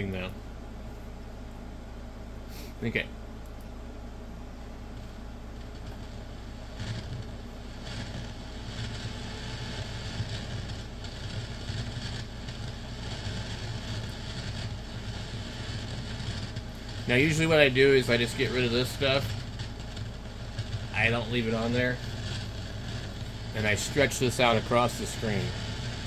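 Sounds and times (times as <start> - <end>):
radio static hiss: 0.0 - 0.4, 2.1 - 3.2, 4.7 - 26.0
low mains hum: 0.0 - 26.0.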